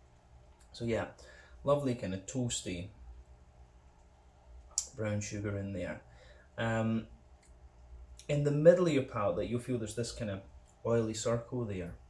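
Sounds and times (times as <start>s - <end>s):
mouth click: 4.7s - 5.0s
person speaking: 4.7s - 7.1s, 8.2s - 12.0s.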